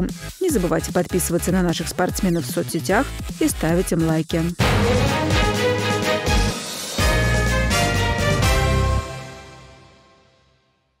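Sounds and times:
theme music last notes ringing: 4.6s - 10.6s.

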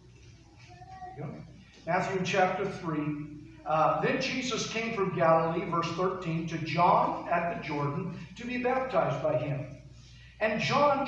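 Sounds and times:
man's amplified speech: 1.2s - 11.0s.

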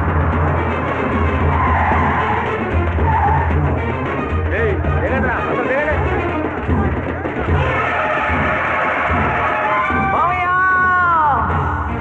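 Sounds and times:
film score with pulsing drum: 0.0s - 12.0s
tyres squealing: 0.4s - 10.5s.

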